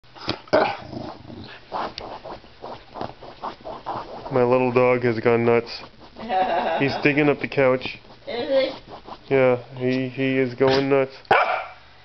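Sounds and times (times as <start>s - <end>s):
dog growling: 0.5s - 2.3s
dog scratching fabric cushion: 0.8s - 11.0s.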